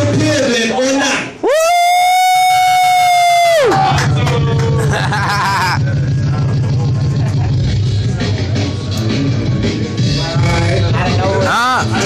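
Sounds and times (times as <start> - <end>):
hip-hop beat with bass line: 3.3 - 12.0.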